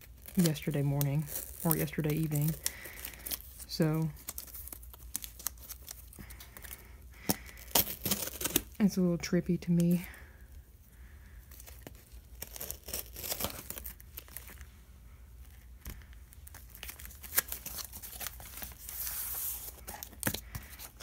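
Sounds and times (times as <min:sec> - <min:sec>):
tape tearing: 0:00.0 - 0:08.8, 0:11.6 - 0:14.6, 0:15.8 - 0:21.0
knife slitting packing tape: 0:07.3 - 0:08.7, 0:12.4 - 0:14.0
cardboard crackles and scrapes: 0:16.7 - 0:21.0.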